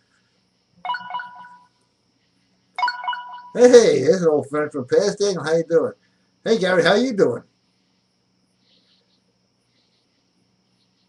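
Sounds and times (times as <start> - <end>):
electronic telephone ringtone: 0.9 - 1.7, 2.8 - 3.7.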